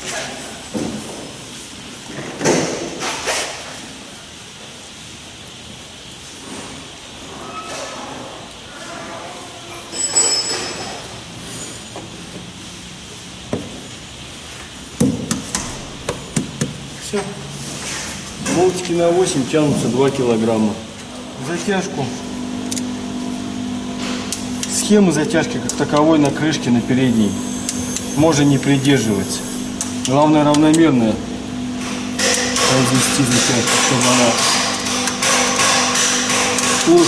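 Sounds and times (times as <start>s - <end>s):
metal clinks and knocks: 9.9s - 11.9s.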